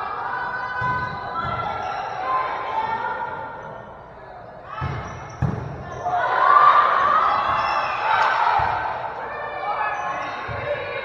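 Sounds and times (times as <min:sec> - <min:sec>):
volleyball struck: 0:04.8 - 0:05.9
players and spectators cheering: 0:05.9 - 0:11.0.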